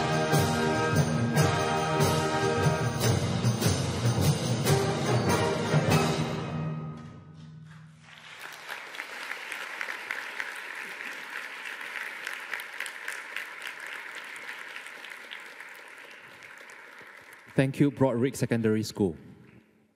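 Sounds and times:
audience applause: 0:08.0 - 0:18.1.

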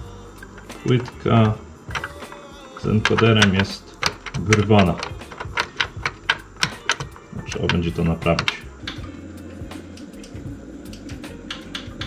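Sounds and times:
sharp clicks from metal chassis: 0:00.0 - 0:12.0.

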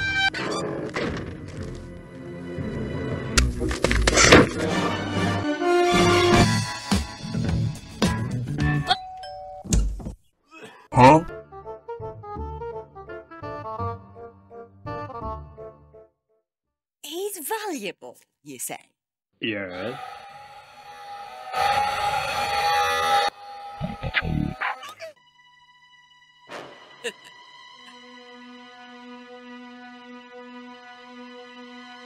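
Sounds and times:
music: 0:00.0 - 0:08.9, 0:11.0 - 0:16.4, 0:25.1 - 0:32.0.

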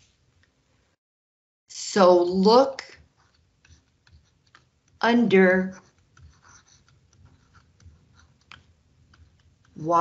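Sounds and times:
stylus scratching and tapping a screen: 0:02.0 - 0:10.0.

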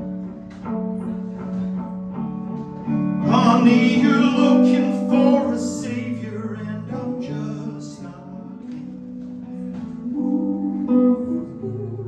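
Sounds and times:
electric guitar notes: 0:00.0 - 0:12.0.

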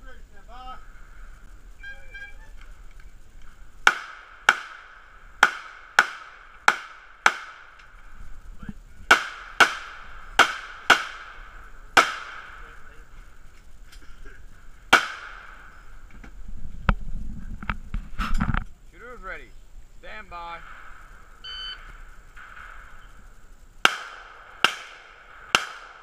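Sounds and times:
low rumble: 0:00.0 - 0:26.0.

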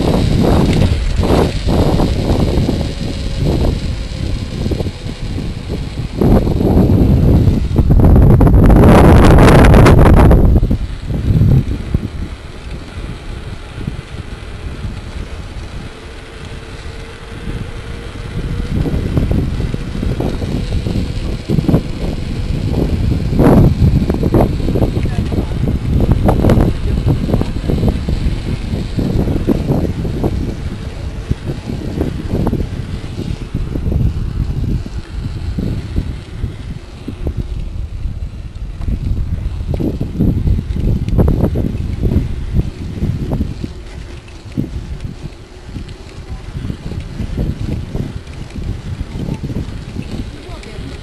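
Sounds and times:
bike tyres and frame rattling: 0:00.0 - 0:51.0
wind buffeting microphone: 0:00.0 - 0:51.0.

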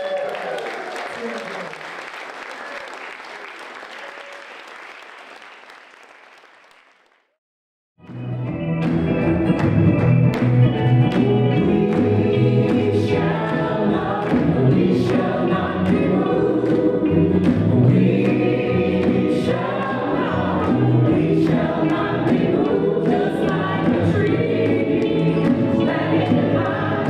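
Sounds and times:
choir singing with instruments: 0:10.9 - 0:27.0.

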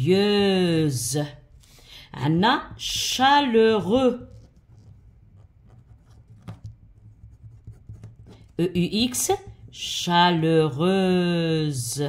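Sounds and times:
pen scratching on paper: 0:03.8 - 0:09.9.

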